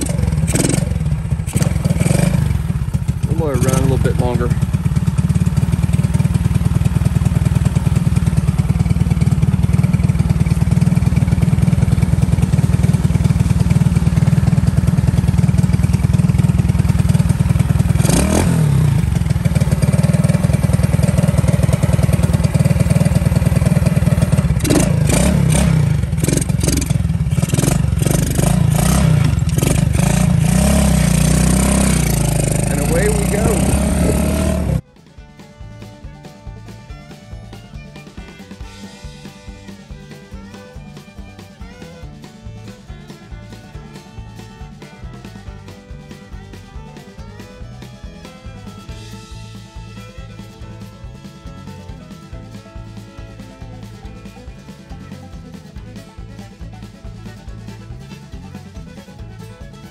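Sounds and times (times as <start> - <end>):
sharp clicks and knocks: 0.0 - 2.4
motorcycle engine idling: 0.0 - 59.9.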